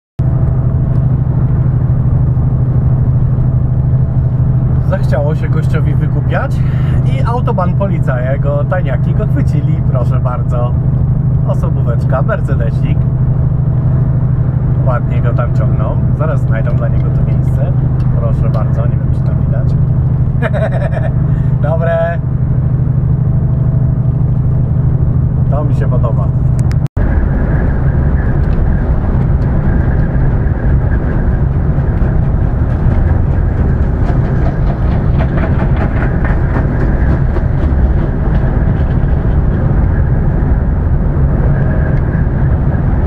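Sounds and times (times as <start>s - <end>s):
engine and tyre drone: 0.2s - 43.0s
click: 26.6s - 26.8s.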